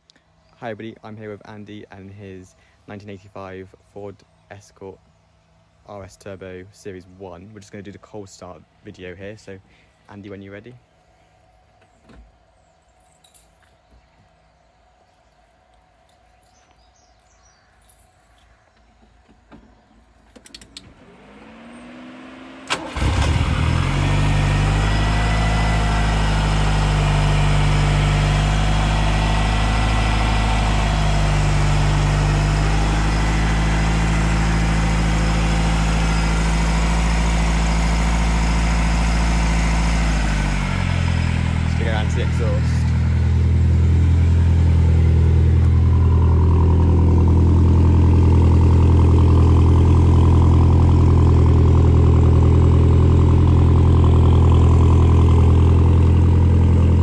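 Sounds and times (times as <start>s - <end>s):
car engine cranking: 20.2s - 57.0s
car engine idling: 20.5s - 57.0s.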